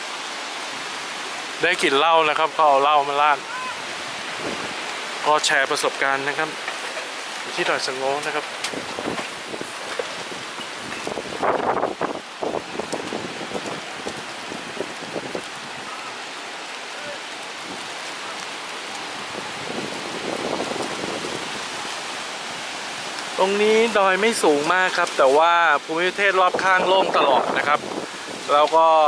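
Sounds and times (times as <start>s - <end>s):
gusting wind: 0.0s - 29.0s
heavy rain: 0.0s - 29.0s.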